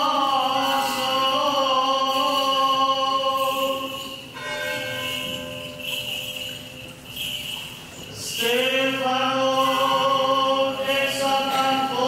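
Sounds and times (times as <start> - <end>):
small bells jingling: 0.0 - 12.0
chant singing: 8.4 - 12.0.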